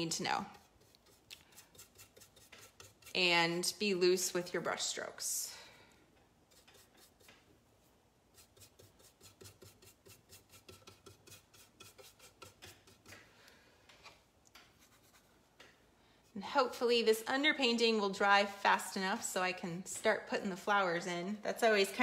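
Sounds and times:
paintbrush scrubbing across canvas: 0:00.0 - 0:03.4, 0:06.5 - 0:13.2.

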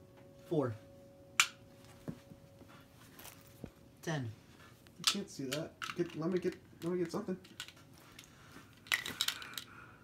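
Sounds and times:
small hard objects clattering: 0:08.8 - 0:09.7.

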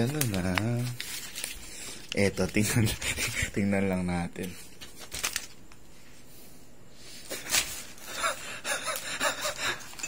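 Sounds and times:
person gasping breathily: 0:08.0 - 0:10.0.

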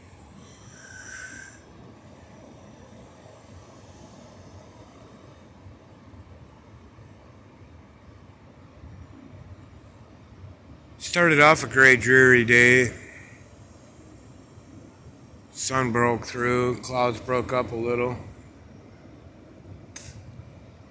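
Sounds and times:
distant ocean surf: 0:00.0 - 0:20.9.

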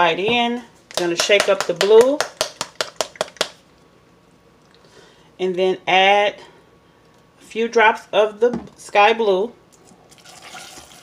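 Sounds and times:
squeeze bottle shaken clicking: 0:02.2 - 0:03.6.

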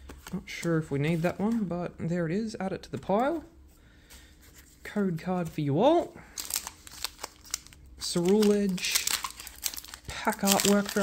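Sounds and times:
foil pack crinkling: 0:06.3 - 0:11.0.

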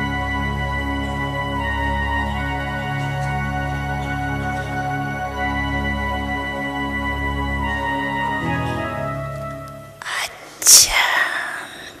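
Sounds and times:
person whispering: 0:10.0 - 0:12.0.

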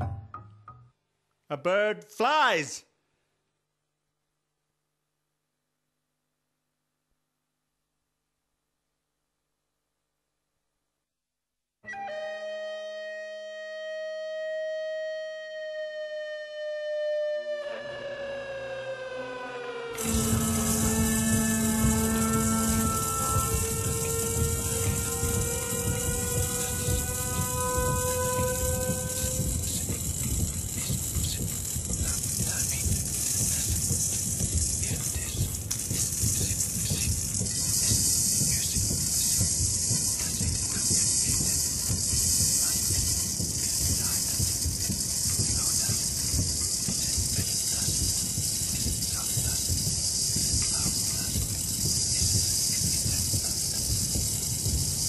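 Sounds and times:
gliding sustained tones: 0:15.6 - 0:29.9.

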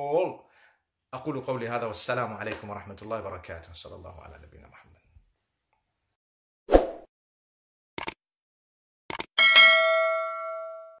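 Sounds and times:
bell ding: 0:09.4 - 0:11.0.

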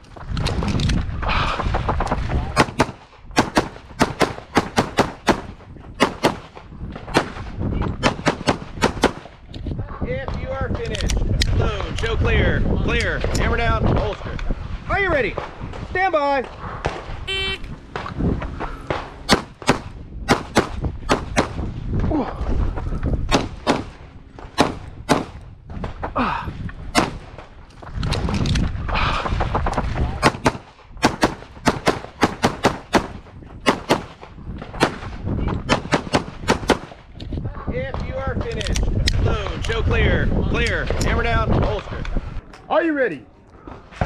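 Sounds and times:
pistol shots: 0:02.6 - 0:09.3, 0:18.8 - 0:21.6, 0:23.3 - 0:25.4, 0:26.9 - 0:27.3, 0:30.2 - 0:35.1, 0:35.7 - 0:37.0.

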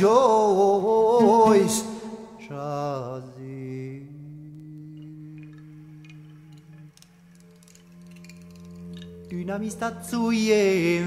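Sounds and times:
man singing: 0:00.0 - 0:06.1, 0:09.3 - 0:11.0
low instrumental drone: 0:01.0 - 0:11.0.

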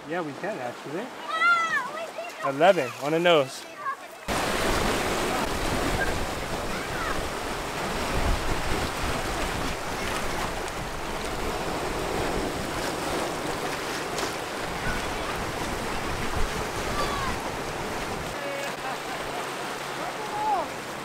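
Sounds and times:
ocean surf on rocks: 0:00.0 - 0:21.0
wind on microphone: 0:04.4 - 0:18.4.

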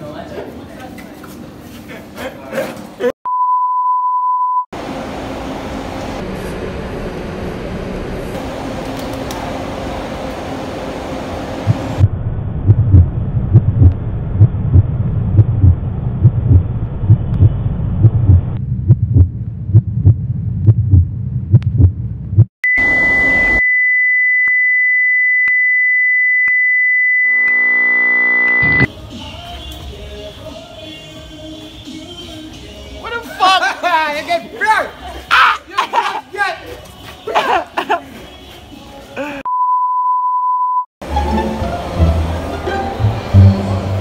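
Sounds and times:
bass-heavy beat: 0:11.6 - 0:22.5
high-pitched electronic tone: 0:27.2 - 0:28.9.

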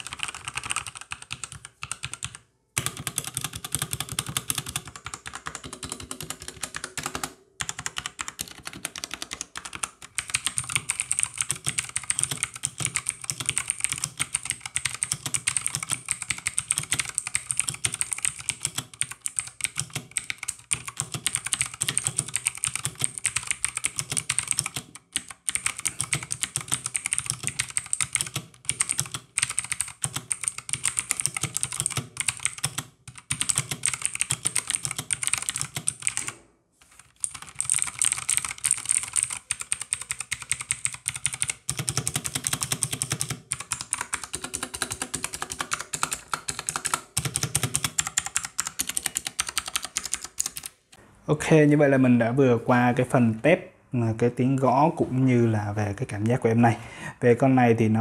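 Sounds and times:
fast mechanical keyboard typing: 0:00.0 - 0:50.8.

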